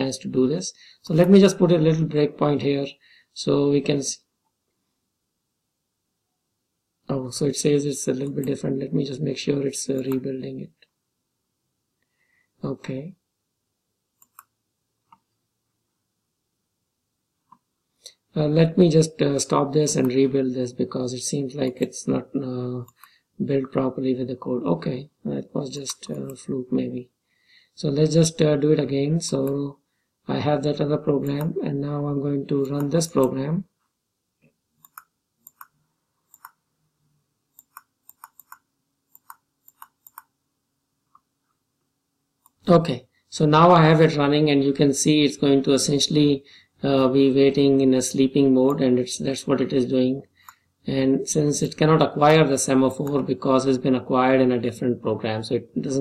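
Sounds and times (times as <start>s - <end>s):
computer mouse clicks: 14.2s - 15.3s, 34.8s - 36.6s, 37.5s - 40.4s, 42.4s - 42.6s.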